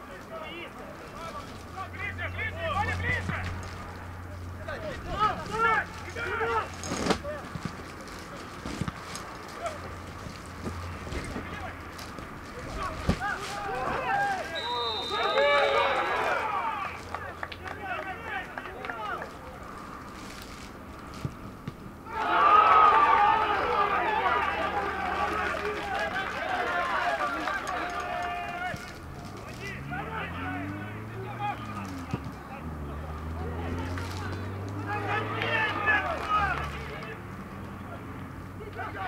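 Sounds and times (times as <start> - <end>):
players shouting: 0.0 - 8.3, 12.5 - 19.7, 22.0 - 39.0.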